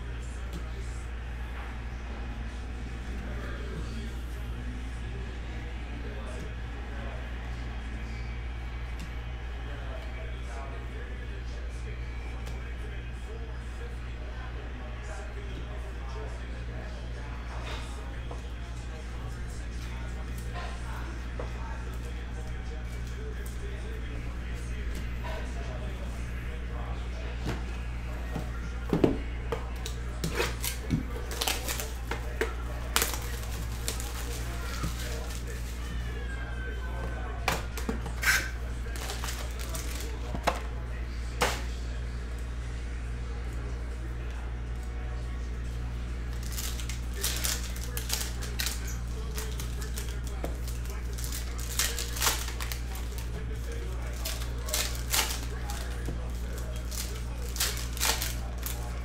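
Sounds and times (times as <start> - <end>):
steady low hum: 0.0 - 59.0
trading cards clicking and crinkling: 29.2 - 36.2, 37.0 - 41.7, 46.2 - 59.0
foil packs torn open: 29.8 - 35.8, 37.8 - 40.2, 46.3 - 59.0.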